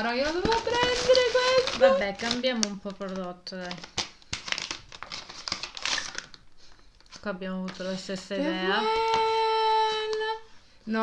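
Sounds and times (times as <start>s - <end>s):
wrapping paper crinkling and tearing: 0.0s - 10.2s.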